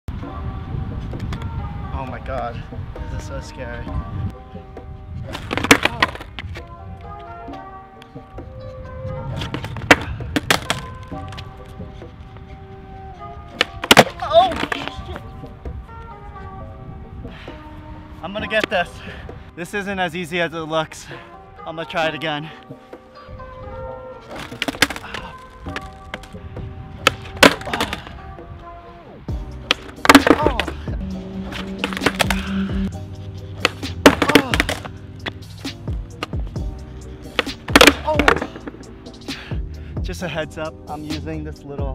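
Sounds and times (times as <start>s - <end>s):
background music: 0.1s - 41.9s
skateboard clacking on concrete: 5.3s - 6.6s, 9.4s - 11.5s, 13.5s - 15.3s, 24.3s - 26.4s, 27.0s - 28.1s, 29.7s - 30.8s, 31.5s - 32.5s, 33.6s - 35.4s, 37.3s - 38.8s
background music with beat: 22.6s - 41.9s.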